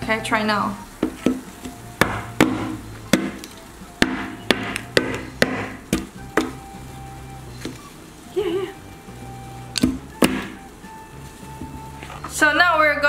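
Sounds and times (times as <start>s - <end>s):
chopsticks knocking frozen fruit: 2.0s - 6.6s.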